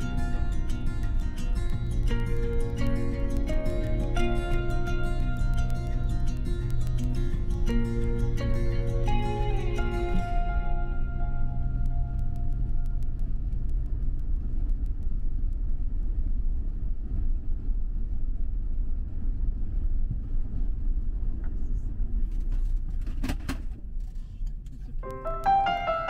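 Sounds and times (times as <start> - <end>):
car driving on paved road: 0.0 - 26.0.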